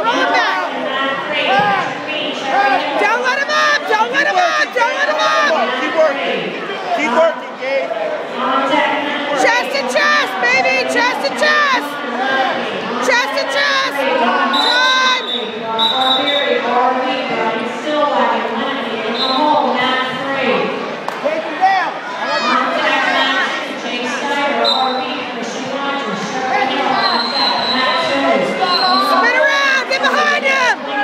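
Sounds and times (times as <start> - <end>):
spectators calling and shouting: 0.0 - 31.0.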